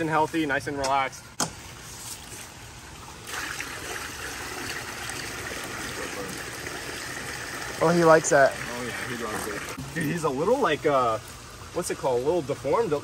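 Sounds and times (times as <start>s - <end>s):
water pouring into pool: 3.0s - 12.9s.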